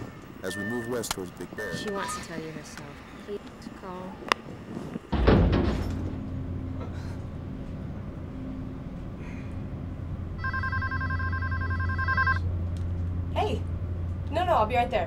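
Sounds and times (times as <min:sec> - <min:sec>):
mobile phone warbling ring: 0:10.4 - 0:12.4.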